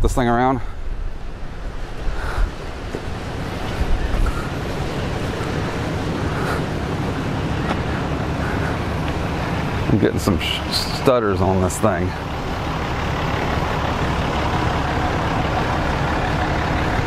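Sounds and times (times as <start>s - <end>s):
wind noise on microphone: 0.7s - 10.0s.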